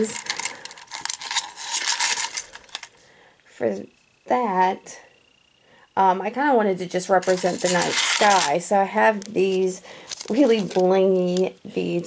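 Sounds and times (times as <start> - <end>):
glass beads and metal charms rattling: 0.0 - 2.9.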